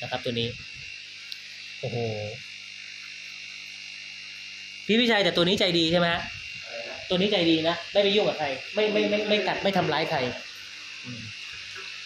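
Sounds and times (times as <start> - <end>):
aquarium pump hiss: 0.0 - 12.0
electric hum: 0.0 - 12.0.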